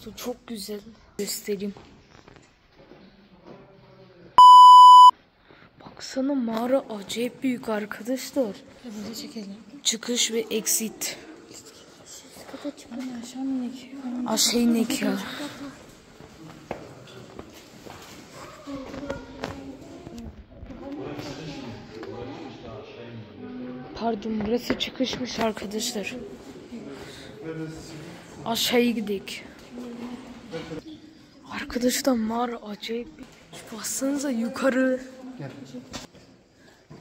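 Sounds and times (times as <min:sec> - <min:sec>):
high test-tone beep: 0:04.4 - 0:05.1.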